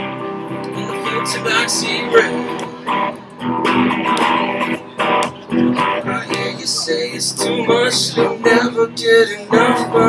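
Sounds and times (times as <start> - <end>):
electric guitar strumming chords: 0.0 - 10.0.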